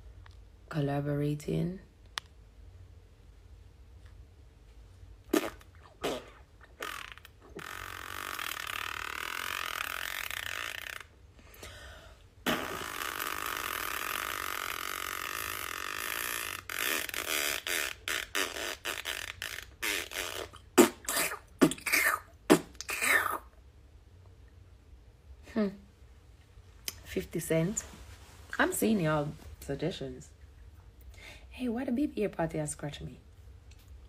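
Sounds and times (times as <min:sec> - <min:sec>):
percussive mouth sounds: 0:05.2 - 0:11.2, 0:12.4 - 0:23.6, 0:26.8 - 0:27.1
woman making mouth pops: 0:19.4 - 0:23.4.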